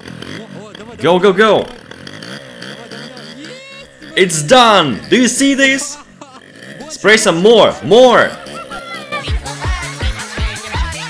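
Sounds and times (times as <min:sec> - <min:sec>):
scooter engine revving: 0:00.0 - 0:11.0.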